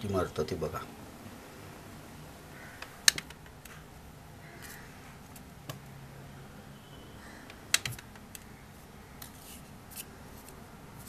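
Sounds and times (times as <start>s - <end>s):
paper rustling: 9.2s - 11.0s.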